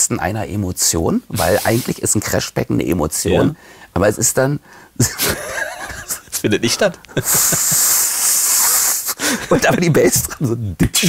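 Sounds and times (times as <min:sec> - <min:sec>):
man imitating a cymbal with his mouth: 0:01.4 - 0:02.0, 0:07.2 - 0:09.2.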